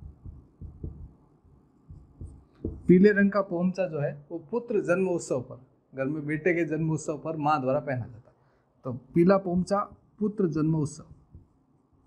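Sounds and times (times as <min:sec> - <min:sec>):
marker thudding on whiteboard: 0:02.0 - 0:02.9.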